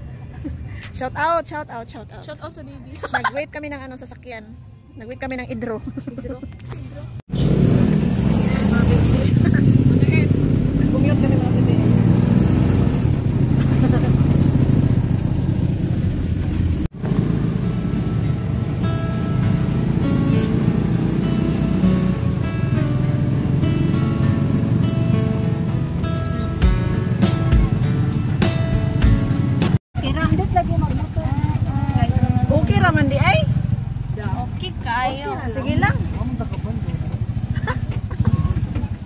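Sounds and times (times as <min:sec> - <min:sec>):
vehicle engine and road noise: 0:00.0 - 0:39.0
melody playing: 0:17.6 - 0:29.8.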